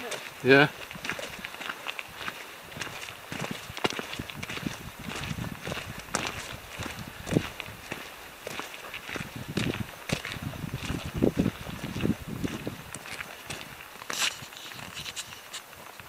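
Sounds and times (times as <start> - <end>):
footsteps on forest track: 0.0 - 16.0.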